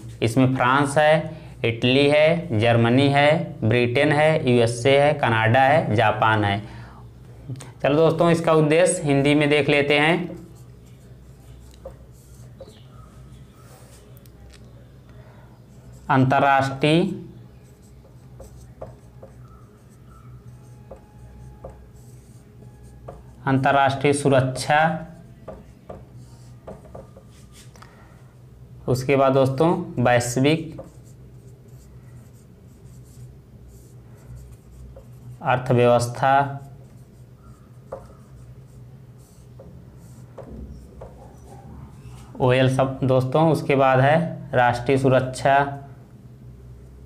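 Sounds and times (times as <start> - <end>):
low steady hum: 0.0 - 47.0
marker scratching on whiteboard: 8.4 - 14.2, 15.7 - 27.7, 30.6 - 42.4.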